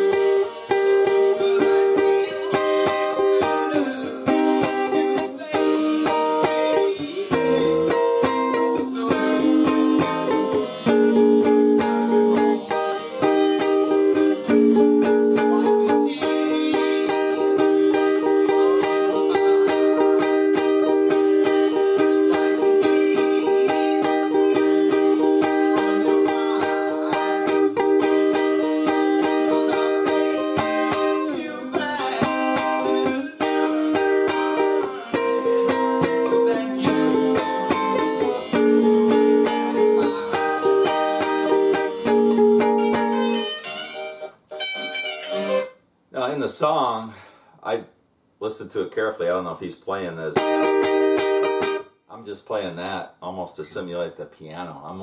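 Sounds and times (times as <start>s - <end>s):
electric guitar chords: 0.0s - 45.7s, 50.4s - 51.9s
slow blues music: 0.0s - 46.2s, 50.3s - 52.1s.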